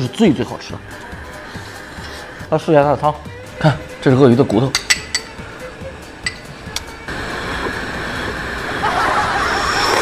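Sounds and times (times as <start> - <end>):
ladle clinking on bowl: 4.7 - 5.4, 6.2 - 6.5.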